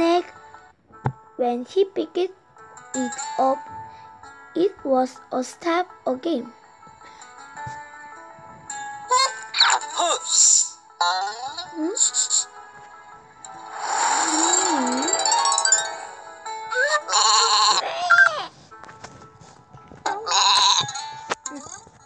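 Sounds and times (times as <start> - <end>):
light background music: 0.0 - 22.0
cartoon sheep bleating: 16.8 - 18.5.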